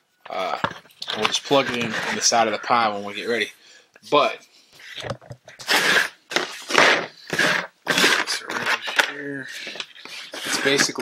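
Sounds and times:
plastic case scraping on table: 0.5 - 2.6, 4.8 - 11.0.

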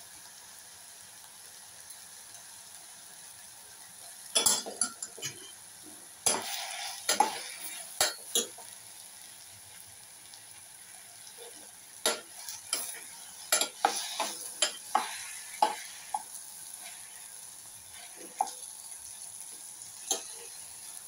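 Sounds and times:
light sizzle: 0.0 - 21.0
metal spoon scraping a pot: 12.1 - 15.8.

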